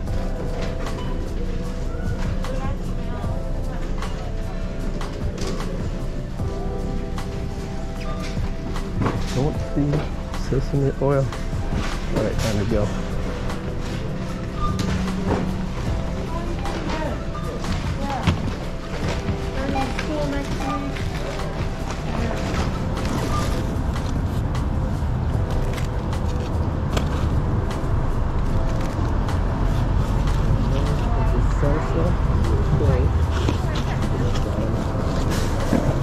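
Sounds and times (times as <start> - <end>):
background music: 0.0 - 36.0
in-store chatter: 0.0 - 36.0
low street noise rumble: 0.0 - 36.0.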